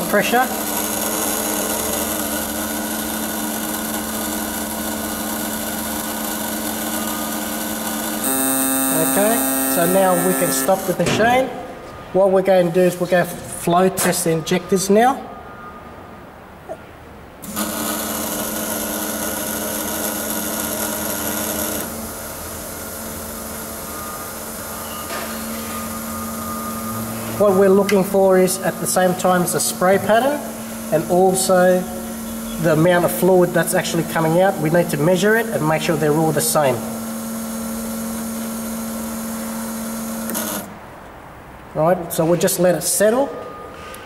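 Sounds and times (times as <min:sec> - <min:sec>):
fuel injectors pulsing rapidly: 0:00.0 - 0:11.0
steady buzzing with hum: 0:00.0 - 0:11.8, 0:17.4 - 0:41.0.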